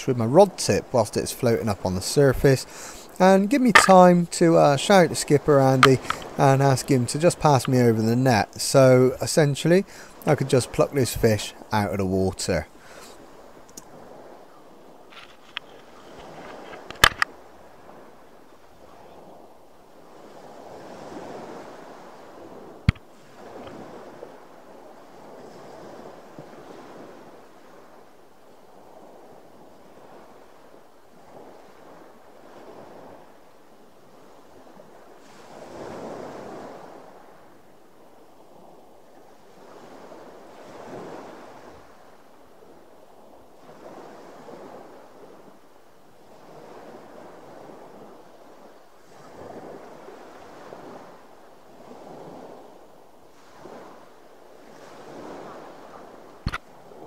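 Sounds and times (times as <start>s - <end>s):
water lapping against boat: 1.8s - 8.1s
sharp click: 3.7s - 4.0s, 5.8s - 6.3s, 16.8s - 17.3s, 56.4s - 56.6s.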